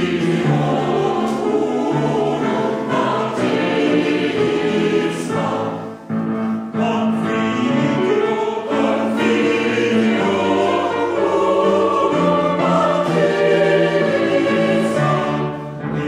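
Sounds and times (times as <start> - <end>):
mixed choir singing: 0.0 - 16.0
piano: 0.0 - 16.0.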